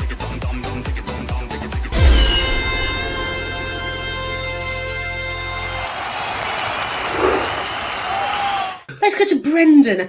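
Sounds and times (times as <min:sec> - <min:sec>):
held electronic chord: 0:02.0 - 0:05.8
applause-like noise: 0:05.2 - 0:08.9.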